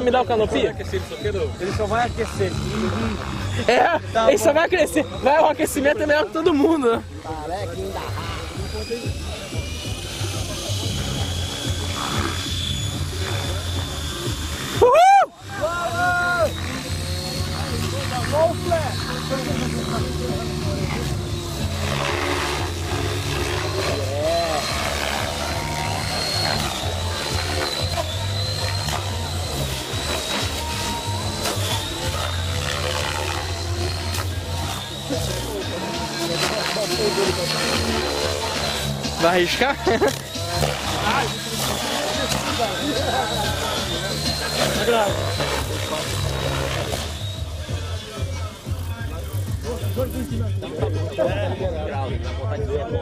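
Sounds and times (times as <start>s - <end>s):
model helicopter motor whine: 0.0s - 51.5s
low rotor hum: 0.0s - 53.0s.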